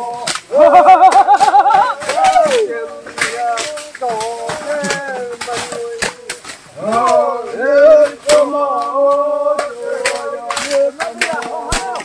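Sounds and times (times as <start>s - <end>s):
machetes chopping undergrowth: 0.0s - 12.0s
men calling out: 0.0s - 12.0s.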